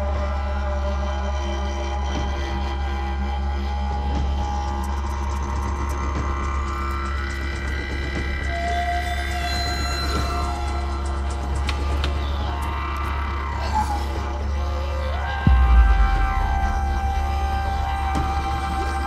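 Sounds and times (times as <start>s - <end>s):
didgeridoo drone: 0.0s - 19.0s.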